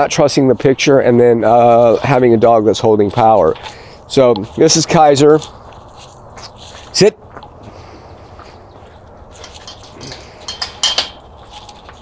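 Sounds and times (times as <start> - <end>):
carabiner clinking on metal latch: 9.4 - 11.2.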